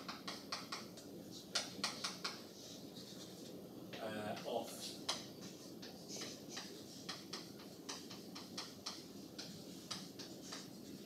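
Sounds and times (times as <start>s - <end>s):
chalk scratching on blackboard: 2.0s - 3.5s, 5.4s - 11.0s.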